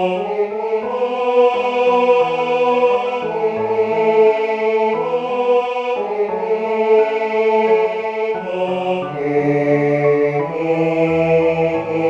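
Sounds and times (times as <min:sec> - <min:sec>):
piano accompaniment: 0:00.0 - 0:12.0
synthesized choir voices: 0:00.0 - 0:12.0.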